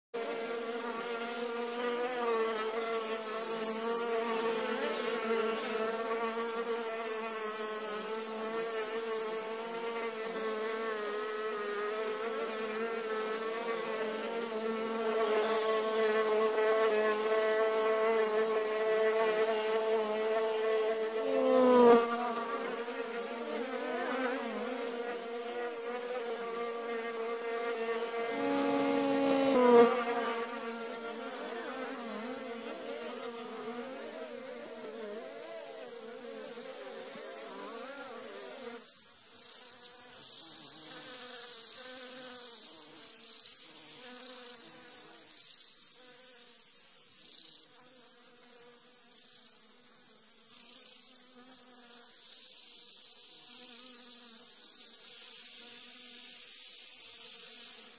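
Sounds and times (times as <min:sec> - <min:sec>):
insect wings buzzing: 0:00.2 - 0:57.9.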